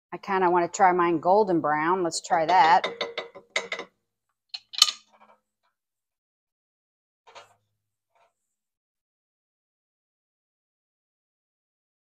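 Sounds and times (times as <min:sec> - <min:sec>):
utensils knocking on metal pot: 0:02.4 - 0:03.9, 0:04.6 - 0:05.0.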